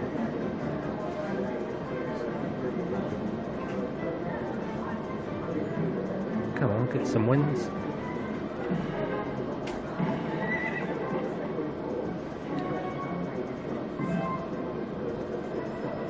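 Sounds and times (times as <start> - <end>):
looping slot machine music: 3.0 - 9.7, 10.9 - 16.0.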